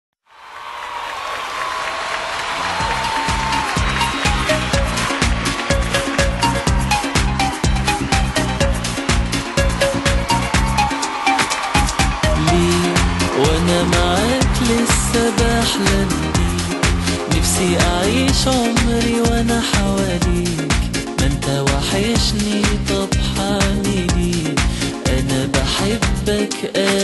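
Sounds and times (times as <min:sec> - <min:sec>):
pop song instrumental: 0:02.5 - 0:27.0
drum and bass beat: 0:02.7 - 0:27.0.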